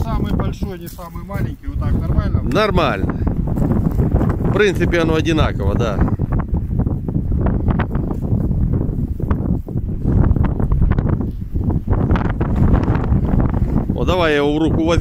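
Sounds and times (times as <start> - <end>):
strong wind buffeting microphone: 0.0 - 15.0.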